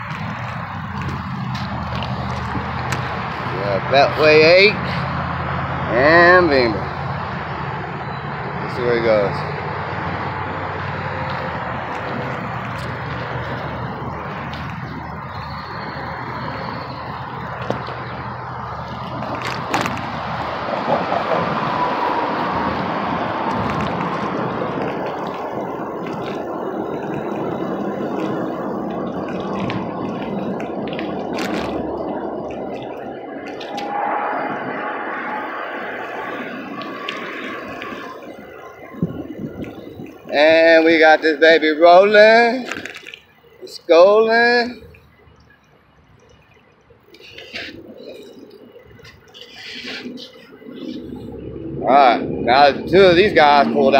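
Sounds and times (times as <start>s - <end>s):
road traffic noise: 0.0s - 53.9s.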